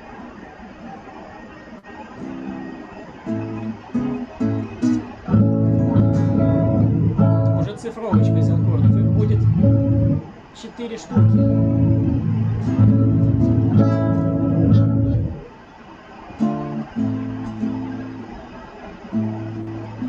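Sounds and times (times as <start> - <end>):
guitar single notes: 2.2 - 10.4, 11.0 - 15.5
guitar strumming chords: 2.2 - 15.5, 16.3 - 20.0.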